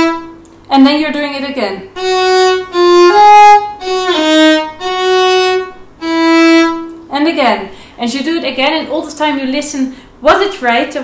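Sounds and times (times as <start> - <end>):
solo violin bowed notes: 0.0 - 0.4, 1.9 - 7.0.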